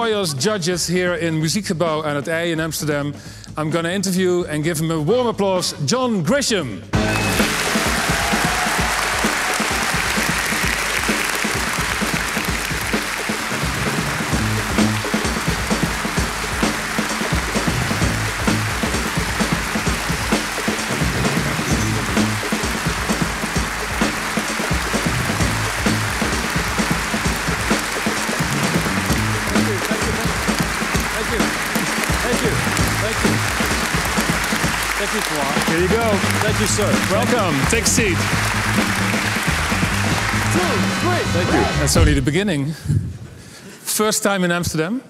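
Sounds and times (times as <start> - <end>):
large audience applauding: 7.0 - 42.0.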